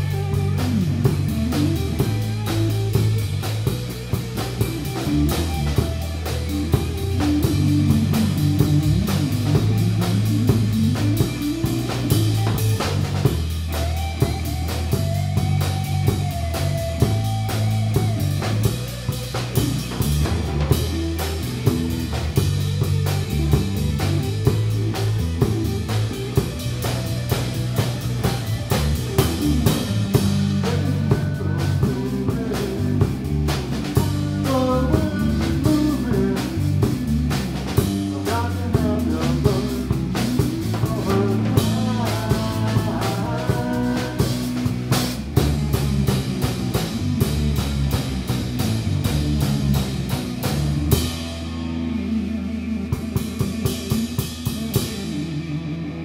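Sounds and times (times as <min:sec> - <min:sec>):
drum kit beat: 0:00.0 - 0:56.0
electric bass: 0:00.0 - 0:56.0
electric guitar: 0:00.0 - 0:56.0.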